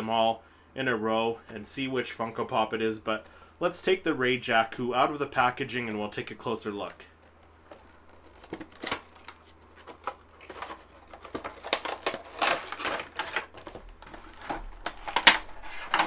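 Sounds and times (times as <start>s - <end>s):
cardboard box and plastic rustling: 6.8s - 16.0s.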